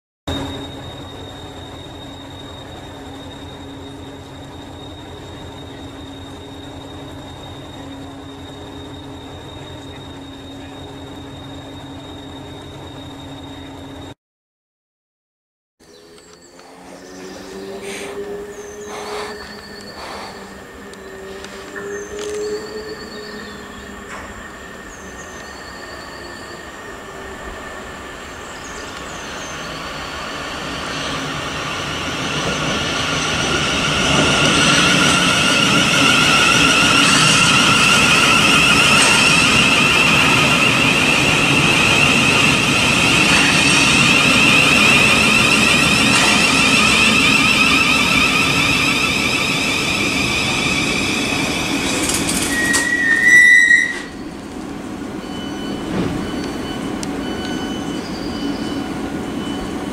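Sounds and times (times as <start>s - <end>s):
high whine: 0.3s - 14.2s, 15.8s - 59.9s
loud brake squeal: 0.3s - 14.2s, 15.9s - 59.9s
train rumble: 0.3s - 14.2s, 15.8s - 59.9s.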